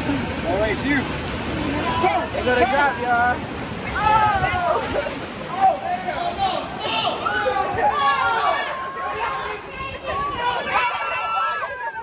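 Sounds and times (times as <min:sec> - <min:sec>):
people exclaiming excitedly: 0:03.9 - 0:12.0.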